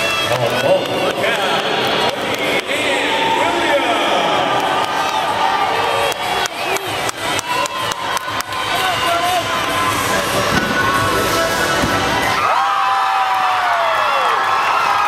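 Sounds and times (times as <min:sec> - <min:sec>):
crowd cheering and shouting: 0:00.0 - 0:15.0
sharp claps: 0:06.0 - 0:08.9.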